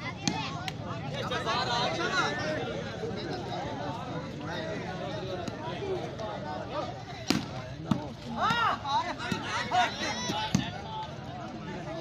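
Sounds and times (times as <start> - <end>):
players and crowd shouting: 0.0 - 12.0.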